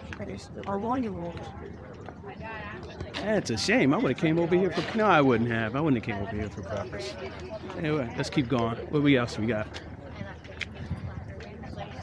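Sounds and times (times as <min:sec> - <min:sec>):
faint murmuring voices: 0:00.0 - 0:12.0.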